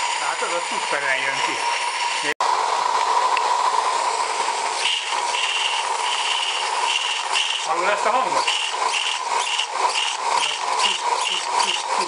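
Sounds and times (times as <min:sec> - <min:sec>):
steam locomotive hissing: 0:04.7 - 0:12.0.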